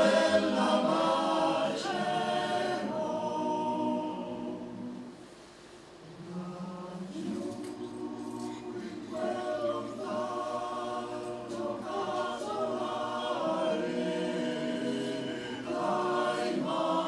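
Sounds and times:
male choir singing: 0.0 - 5.1, 6.2 - 17.0.

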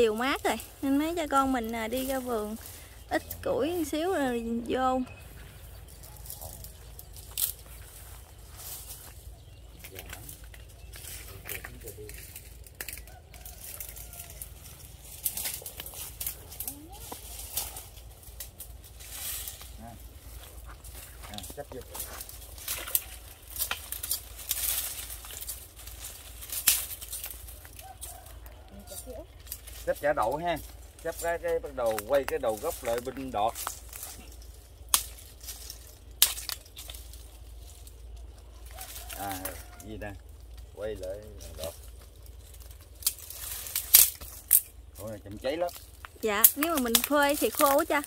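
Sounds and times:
steady low rumble: 0.0 - 27.8
rustling and crackling: 0.0 - 48.0
faint voices: 13.6 - 18.2.

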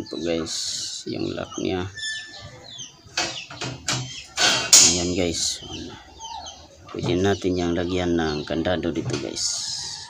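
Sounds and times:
metal latch clanking: 3.2 - 5.2.

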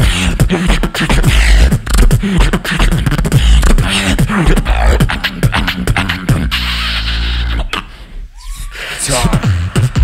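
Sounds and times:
person beatboxing into microphone: 0.0 - 10.0.

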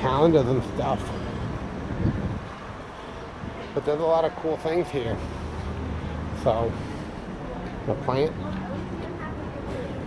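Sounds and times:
low traffic rumble: 0.0 - 10.0
wind on microphone: 1.5 - 2.6.

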